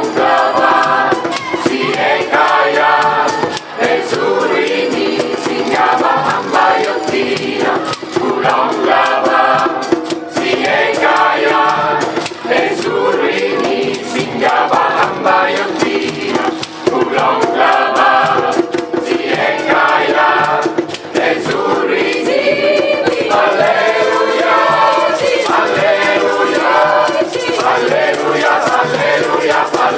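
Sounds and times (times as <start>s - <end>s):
choir singing gospel: 0.0s - 29.9s
hand drum struck with palms: 0.0s - 29.9s.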